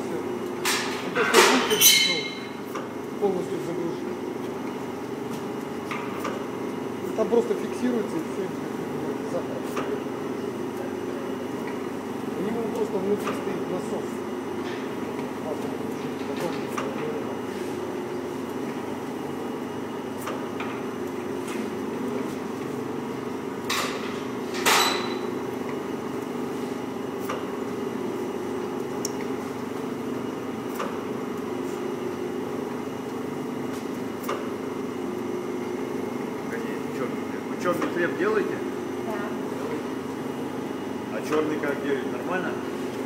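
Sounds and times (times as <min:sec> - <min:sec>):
vacuum pump hum: 0:00.0 - 0:43.0.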